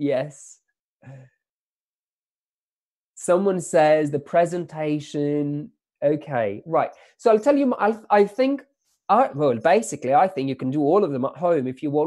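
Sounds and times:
man sighing: 1.0s - 1.4s.

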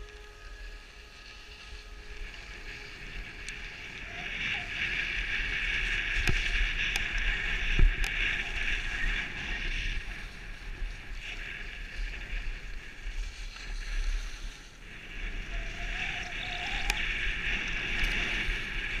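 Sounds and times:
skis scraping on snow: 0.0s - 19.0s.

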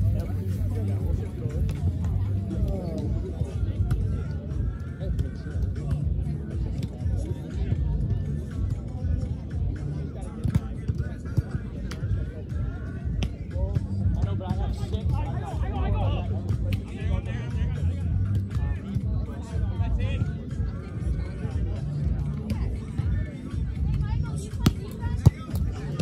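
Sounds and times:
hubbub of people talking: 0.0s - 26.0s
music playing: 0.0s - 26.0s.

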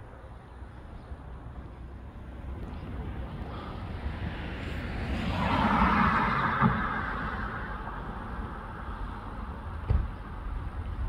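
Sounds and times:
car driving past: 3.4s - 10.2s.

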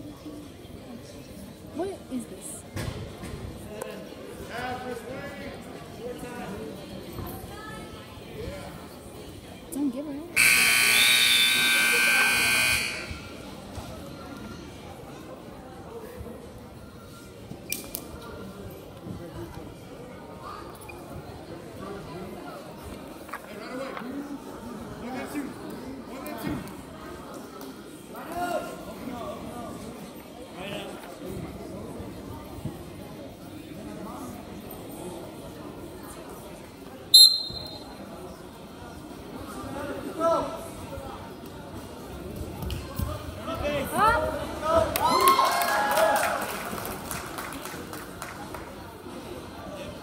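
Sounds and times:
low crowd chatter: 0.0s - 50.0s
hall background noise: 0.1s - 50.0s
referee's whistle blast: 10.4s - 13.4s, 37.2s - 37.9s
scoreboard buzzer: 10.4s - 13.4s.

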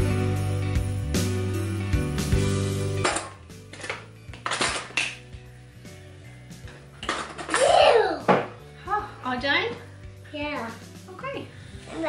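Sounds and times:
quiet background music: 0.0s - 12.0s
cutlery clinking into drawer: 3.0s - 5.2s.

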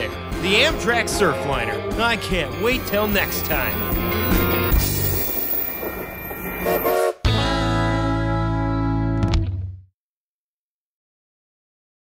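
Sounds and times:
train wheels rumbling on rails: 0.5s - 7.0s.

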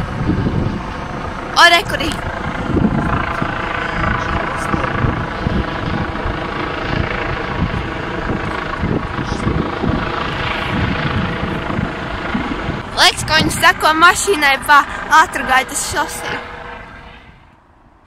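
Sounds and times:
helicopter rotor drone: 0.0s - 18.0s
wind rumbling on microphone: 0.0s - 18.0s.

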